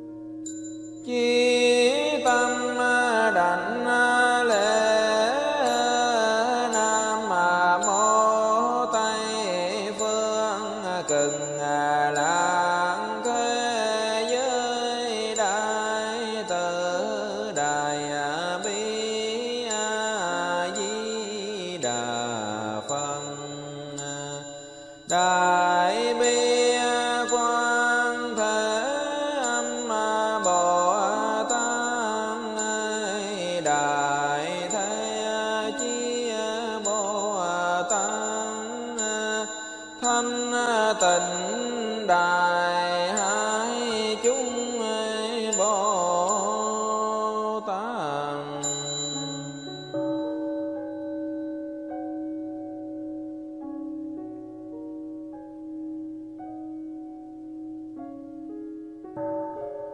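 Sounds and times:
voice chanting melodically: 1.1 - 24.4, 25.2 - 49.6.

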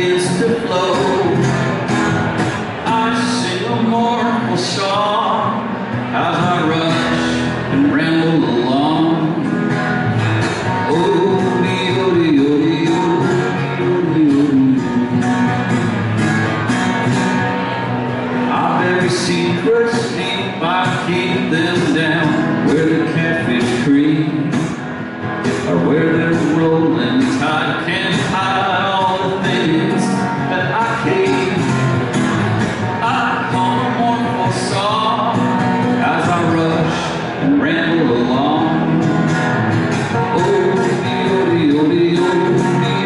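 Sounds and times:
man singing: 0.0 - 1.9, 2.6 - 15.8, 17.7 - 43.0
acoustic guitar strumming: 0.0 - 43.0.

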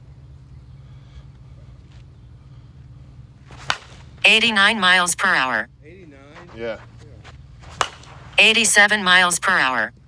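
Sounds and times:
bat cracking softball: 3.4 - 4.4, 7.6 - 8.4.

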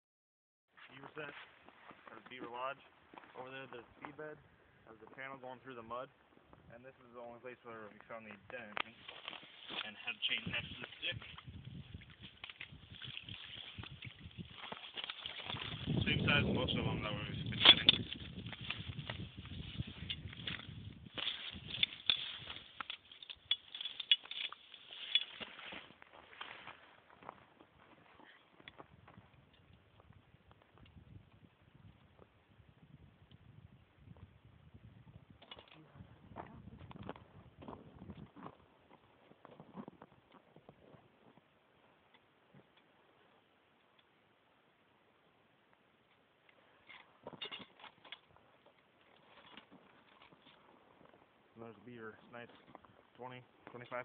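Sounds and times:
snow and ice crunching: 7.7 - 28.6
faint clicks and scrapes: 7.8 - 16.2, 17.1 - 27.4, 46.1 - 51.3.

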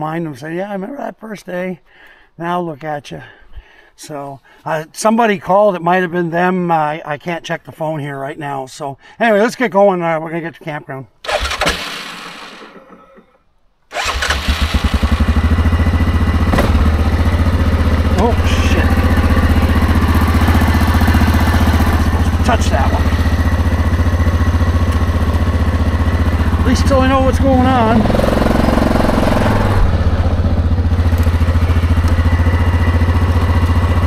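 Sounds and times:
quad bike engine starting and running: 11.2 - 34.0.

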